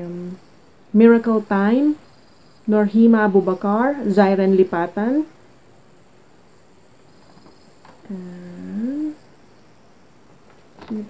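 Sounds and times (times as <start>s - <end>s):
woman humming: 0.0s - 0.4s, 8.0s - 9.3s.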